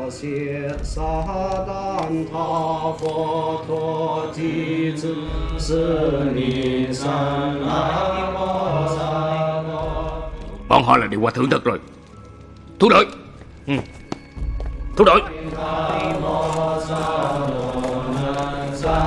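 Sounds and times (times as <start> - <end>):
monks chanting: 0.0 - 10.9, 14.9 - 19.0.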